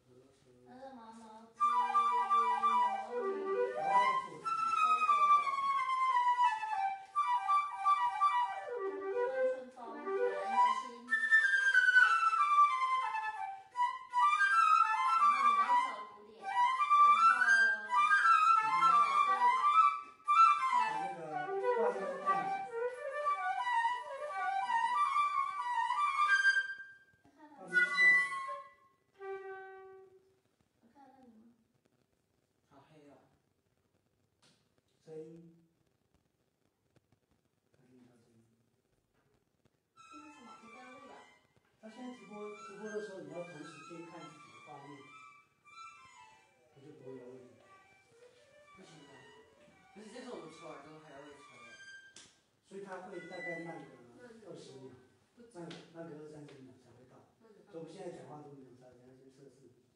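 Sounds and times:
flutes playing in harmony: 0:01.6 - 0:27.0, 0:27.6 - 0:30.1, 0:42.2 - 0:49.1.

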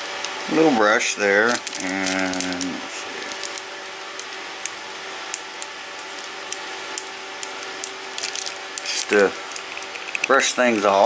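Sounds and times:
faint steady hum: 0:00.0 - 0:11.0
plastic pen clicks and taps: 0:05.3 - 0:10.3.

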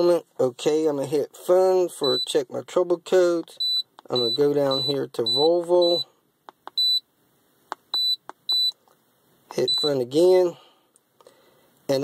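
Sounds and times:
short high beeps: 0:07.9 - 0:08.8, 0:09.6 - 0:10.0.

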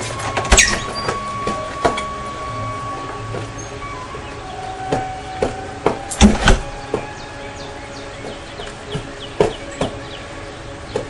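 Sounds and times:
bird chirping: 0:00.0 - 0:11.0
shoes tapping on concrete: 0:03.3 - 0:07.1, 0:08.2 - 0:10.0.

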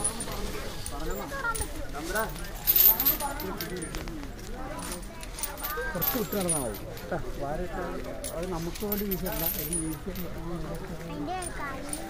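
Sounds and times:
metal chains clinking: 0:00.0 - 0:07.2, 0:08.0 - 0:12.0
people talking: 0:00.0 - 0:12.0.

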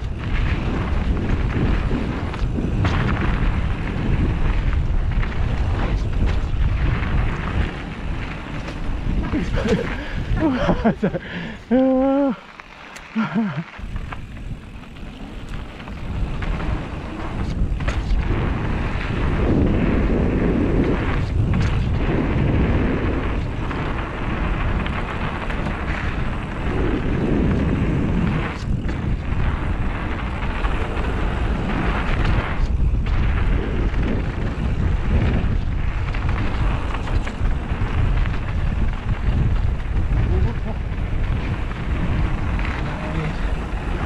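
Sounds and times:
wind buffeting microphone: 0:00.0 - 0:12.4, 0:13.1 - 0:44.0
bike tyres rolling on dirt: 0:00.0 - 0:44.0.

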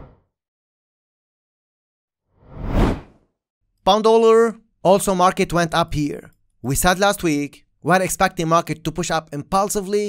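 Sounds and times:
whoosh transition: 0:02.4 - 0:03.1.

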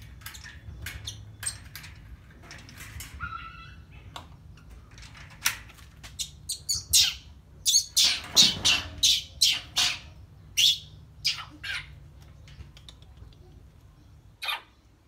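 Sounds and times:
baby monkey squealing: 0:14.4 - 0:14.8.

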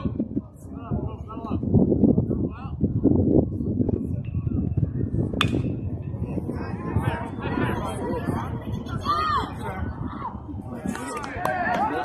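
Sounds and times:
spectators chattering: 0:02.3 - 0:12.0
bat hitting baseball: 0:05.4 - 0:05.8.

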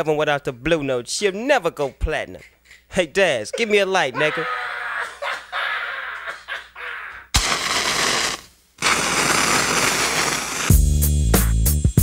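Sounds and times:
loud rushing crackling noise: 0:07.4 - 0:10.8.

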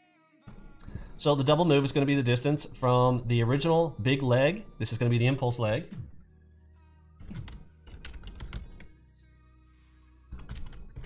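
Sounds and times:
computer keyboard typing: 0:07.3 - 0:08.9, 0:10.4 - 0:11.0.

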